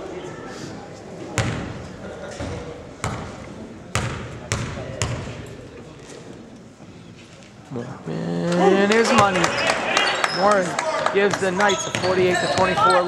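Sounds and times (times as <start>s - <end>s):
murmur of crowd voices: 0.0s - 13.0s.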